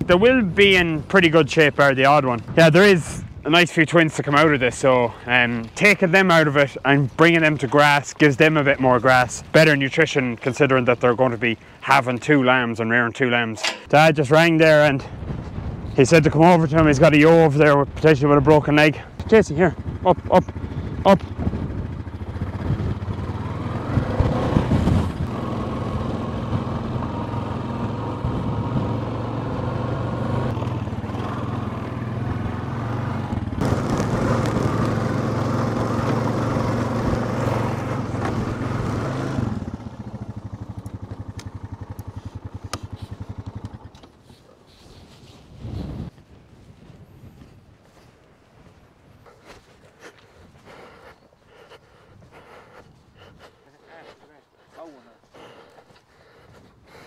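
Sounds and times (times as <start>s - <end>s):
quad bike engine running: 19.2s - 44.4s.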